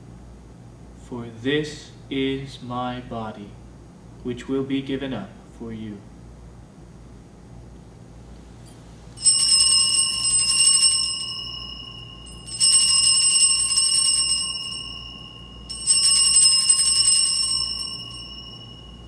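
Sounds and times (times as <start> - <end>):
altar bells jangling: 9.2 - 19.0.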